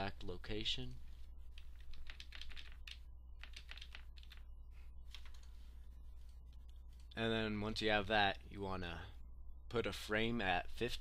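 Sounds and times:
steady low hum: 0:00.0 - 0:11.0
keyboard keys clicking: 0:01.6 - 0:04.4.

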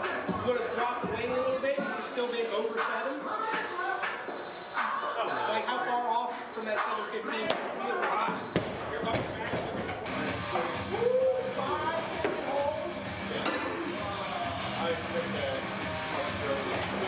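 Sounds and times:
background music: 0:00.0 - 0:17.0
voices: 0:00.0 - 0:17.0.

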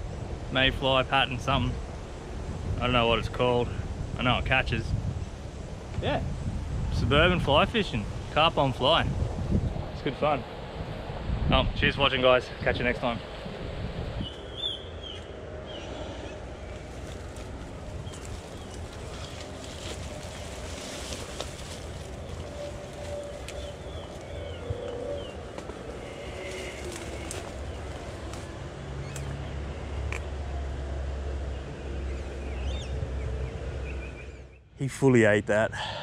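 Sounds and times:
wind rumble on microphone: 0:00.0 - 0:34.5
footsteps through long grass: 0:16.6 - 0:29.3.

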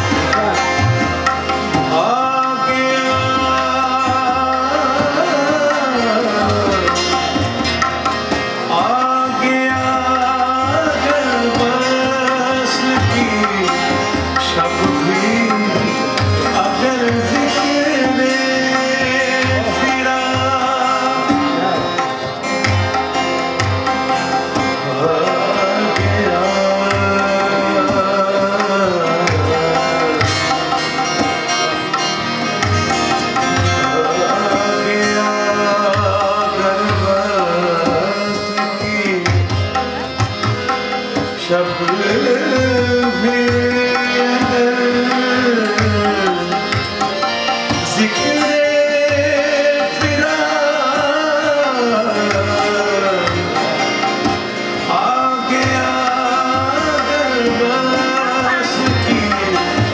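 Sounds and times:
man singing: 0:00.0 - 0:07.9, 0:08.5 - 0:23.1, 0:24.1 - 0:31.8, 0:33.0 - 0:59.9
harmonium: 0:00.0 - 0:59.9
plucked guitar: 0:00.0 - 0:59.9
tabla strokes: 0:00.0 - 0:59.9.

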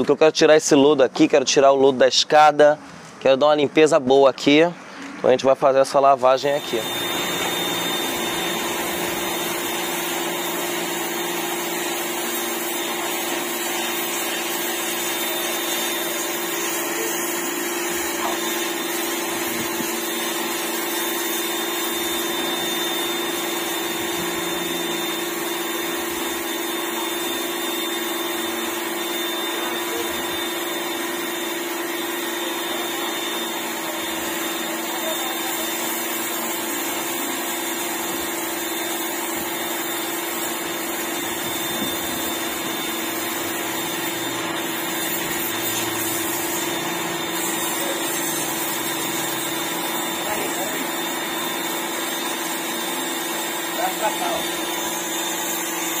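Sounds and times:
pressure washer motor humming: 0:06.4 - 0:56.0
water jet hissing: 0:06.4 - 0:56.0.

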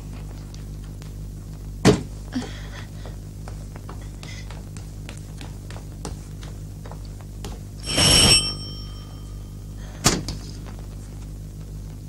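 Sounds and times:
electric doorbell ringing: 0:07.8 - 0:09.8.

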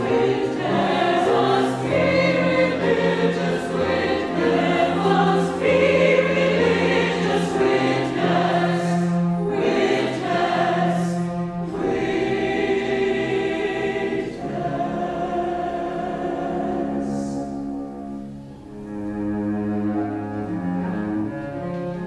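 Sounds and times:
mixed choir singing: 0:00.0 - 0:17.7
low cello line: 0:00.0 - 0:22.0.

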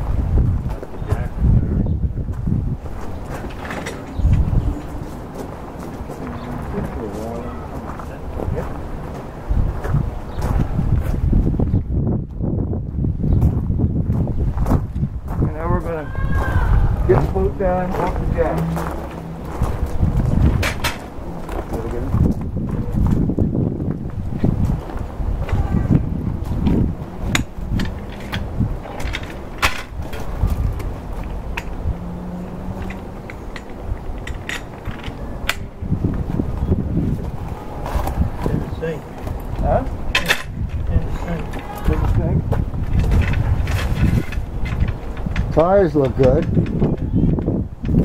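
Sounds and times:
wind rumble on microphone: 0:00.0 - 0:48.0
metal knocks and clanks: 0:17.1 - 0:23.2, 0:26.4 - 0:31.9, 0:32.6 - 0:35.8, 0:40.1 - 0:48.0.

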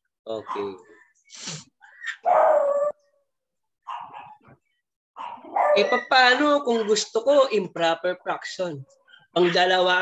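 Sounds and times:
dog barking: 0:00.4 - 0:00.8, 0:02.1 - 0:03.0, 0:03.8 - 0:04.6, 0:05.2 - 0:06.1.

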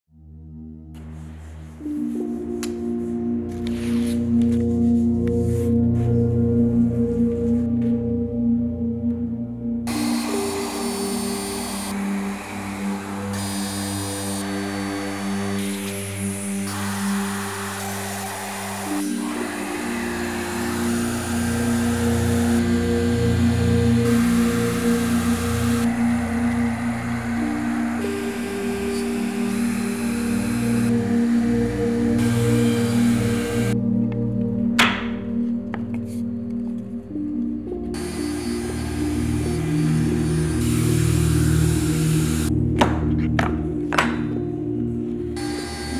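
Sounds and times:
ambient instrumental music: 0:00.1 - 0:45.9
router cutting plywood: 0:09.9 - 0:33.8, 0:37.9 - 0:42.6, 0:45.4 - 0:45.9.

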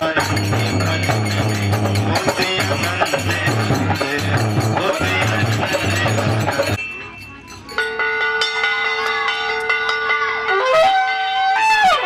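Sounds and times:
metal hand bell rung rapidly: 0:00.0 - 0:11.4.

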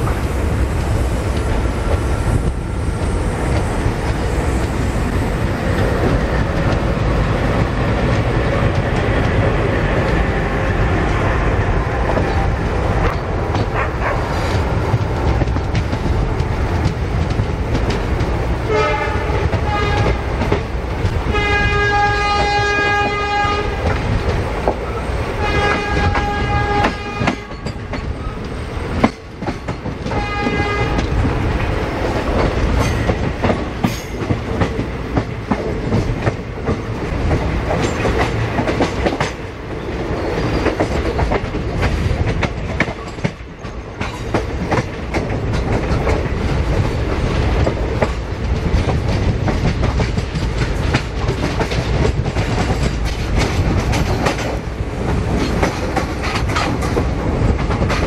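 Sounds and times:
train rumbling with wheels clacking: 0:00.0 - 0:58.0
train horn blast: 0:18.6 - 0:20.3, 0:21.2 - 0:23.9, 0:25.4 - 0:27.7, 0:30.1 - 0:31.1.

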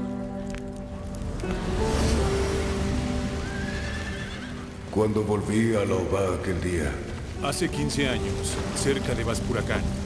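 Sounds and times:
horse neighing: 0:03.4 - 0:04.7.

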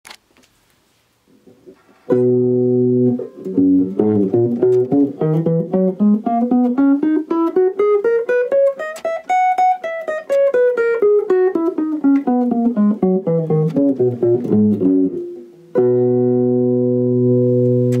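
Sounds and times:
guitar playing scale in octaves: 0:01.3 - 0:18.0.

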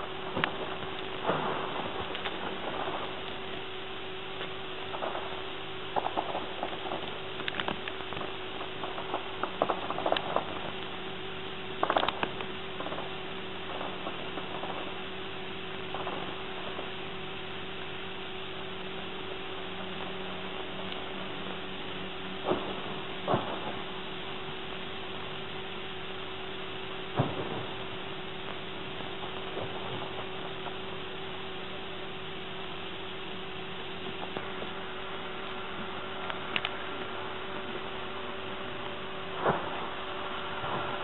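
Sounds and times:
camcorder hiss and hum: 0:00.0 - 0:41.0.

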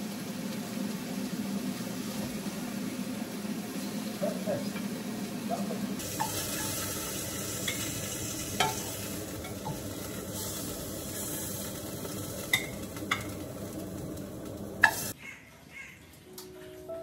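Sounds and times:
chicken sizzling in a pan: 0:00.0 - 0:15.2.

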